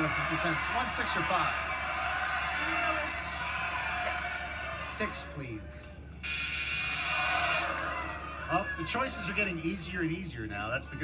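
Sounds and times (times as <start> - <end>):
game show buzzer: 6.2 - 7.8.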